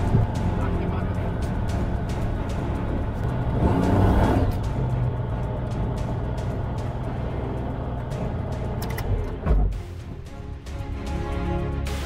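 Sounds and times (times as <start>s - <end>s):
background music: 0.0s - 12.0s
propeller engine running: 0.0s - 12.0s.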